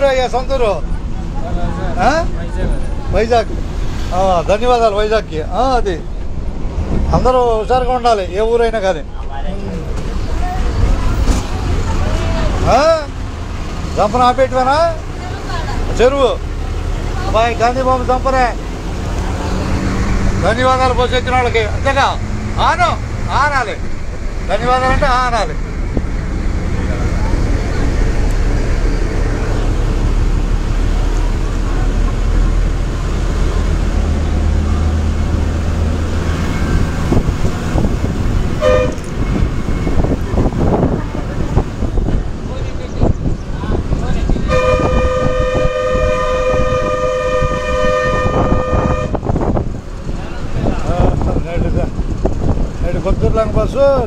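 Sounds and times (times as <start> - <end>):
bus engine rumble: 0.0 - 54.0
road noise: 0.0 - 54.0
horn toot: 38.6 - 39.5, 44.5 - 49.4.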